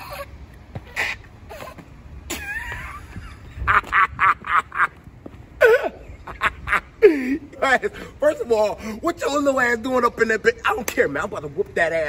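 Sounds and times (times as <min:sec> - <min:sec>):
man laughing hard: 0:01.5 - 0:05.0, 0:05.6 - 0:07.6.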